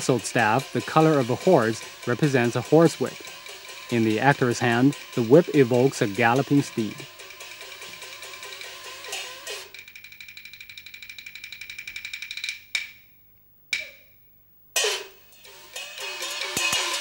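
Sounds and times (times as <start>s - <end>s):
sharp crashes: 14.8s - 17.0s.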